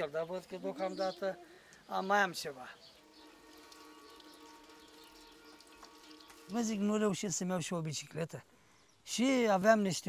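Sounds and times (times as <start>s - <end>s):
water splashing and trickling: 0.0s - 10.0s.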